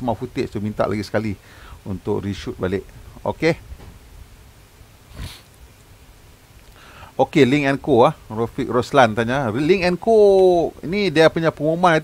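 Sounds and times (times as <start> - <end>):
faint low hum: 0.0 - 12.0
person breathing into microphone: 1.4 - 1.8, 5.1 - 5.5, 6.7 - 7.2.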